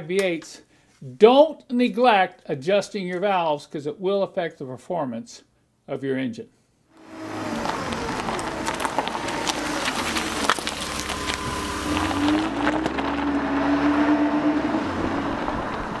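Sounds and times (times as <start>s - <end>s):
vehicle engine running: 7.0s - 16.0s.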